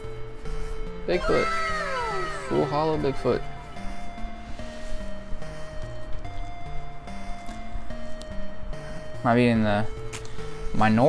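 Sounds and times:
eight-bit lofi music: 0.8 - 11.0
wavering vocal call: 1.2 - 3.7.

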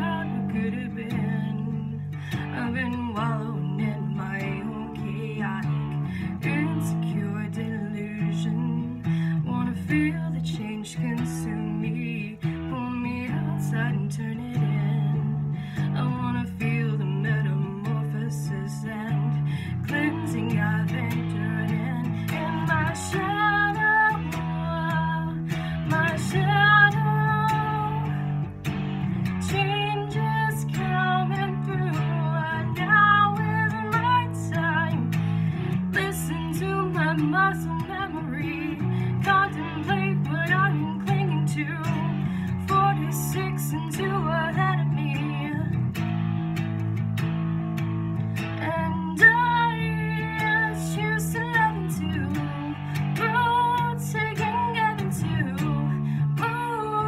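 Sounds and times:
guitar chord riff: 0.0 - 57.0.

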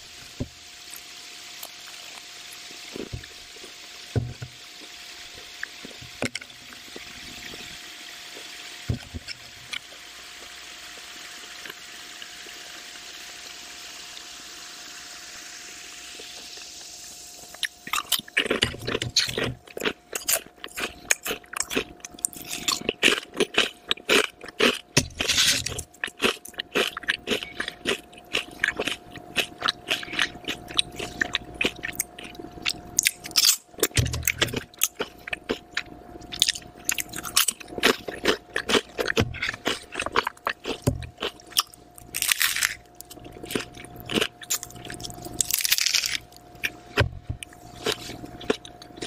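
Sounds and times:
faint steady hum: 0.0 - 49.0
potato chips crunching: 17.5 - 49.0.

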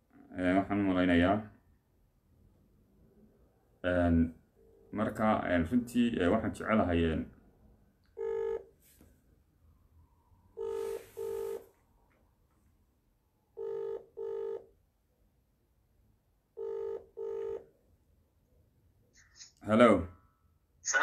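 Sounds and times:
telephone ringback tone: 8.2 - 8.7, 10.6 - 11.7, 13.6 - 14.7, 16.6 - 17.7.

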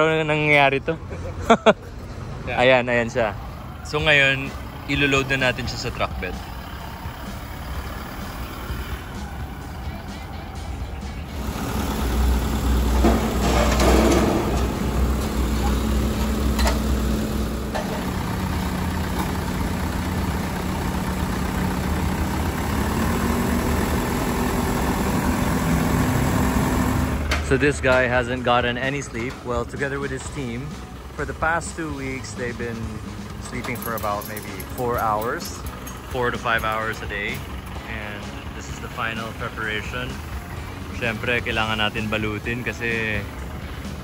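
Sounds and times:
background music: 0.0 - 44.0
truck engine rumbling: 0.0 - 44.0.

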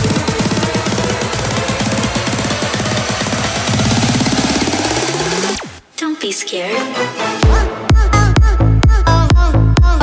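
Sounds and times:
stuttering synth line: 0.0 - 5.8.

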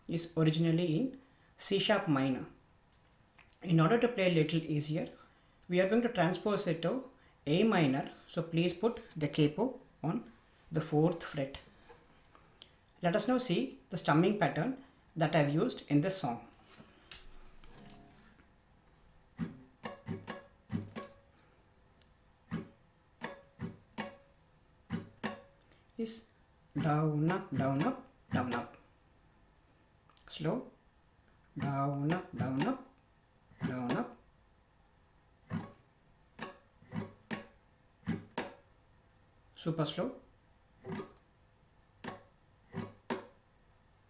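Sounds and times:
acoustic guitar strums: 16.6 - 18.4, 19.3 - 21.5, 22.4 - 25.8, 26.7 - 28.8, 31.5 - 34.2, 35.4 - 38.7, 40.8 - 41.2, 42.0 - 43.4
acoustic guitar strummed slowly: 17.6 - 18.4
guitar ringing: 17.7 - 18.3, 19.4 - 21.3, 22.5 - 25.6.

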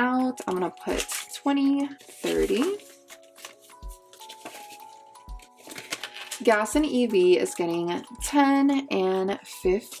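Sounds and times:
soft background music: 0.0 - 10.0
paper banknotes rustling: 0.5 - 6.7.

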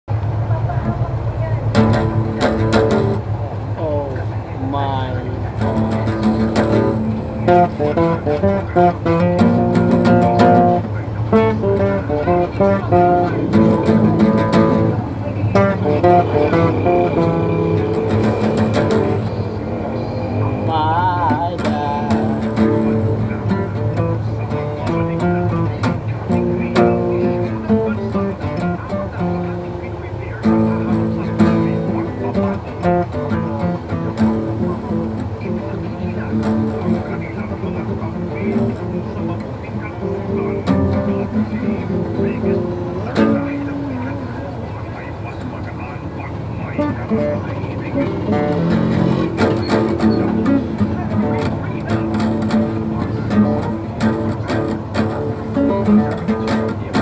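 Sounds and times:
acoustic guitar playing: 0.1 - 57.0
steady low hum: 0.1 - 57.0.

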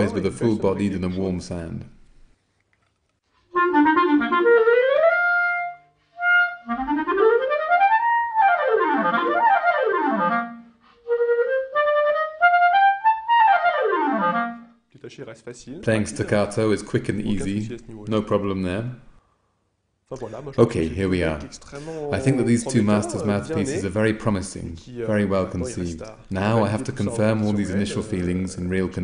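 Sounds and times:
clarinet runs and arpeggios: 3.5 - 14.8.

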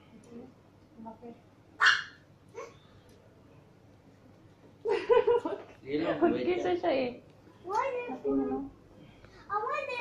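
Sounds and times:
dog barking: 1.8 - 2.2.

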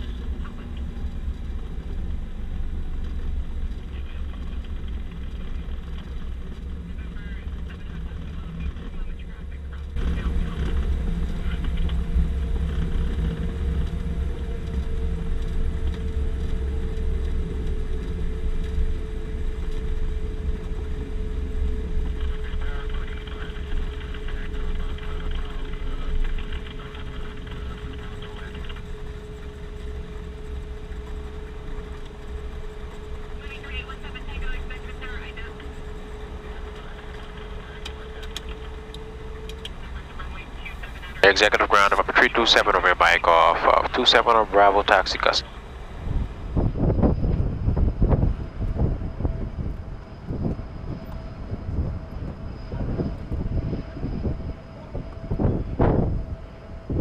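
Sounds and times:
piston engines droning: 0.0 - 57.0
steady hum: 0.0 - 57.0.

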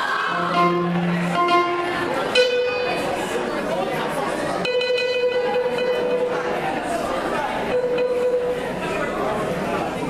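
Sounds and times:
electronic keyboard held notes: 0.0 - 3.9, 4.6 - 9.5
audience chatter: 0.0 - 10.0.

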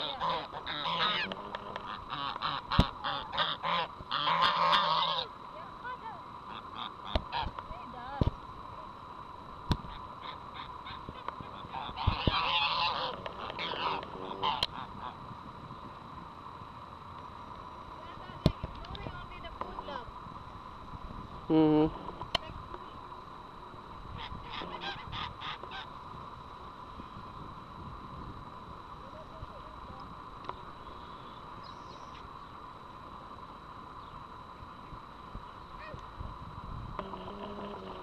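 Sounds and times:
geese honking: 0.0 - 5.3, 6.5 - 7.6, 9.9 - 15.2, 24.2 - 26.0.

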